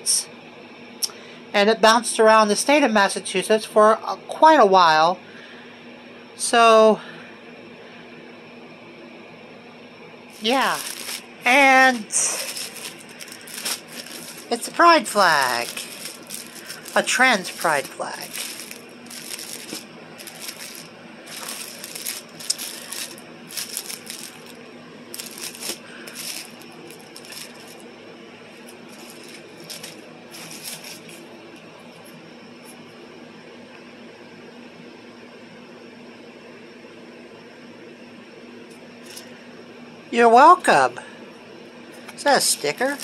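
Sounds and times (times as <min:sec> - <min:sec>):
low steady hum: 0:00.0 - 0:43.0
plastic packaging crinkling: 0:10.3 - 0:27.9, 0:28.5 - 0:31.2, 0:39.0 - 0:39.3, 0:42.3 - 0:43.0.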